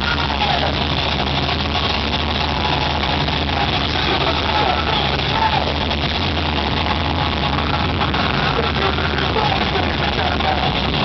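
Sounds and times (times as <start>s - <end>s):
punk rock band playing live: 0.0s - 11.0s
steady low drone: 0.0s - 11.0s.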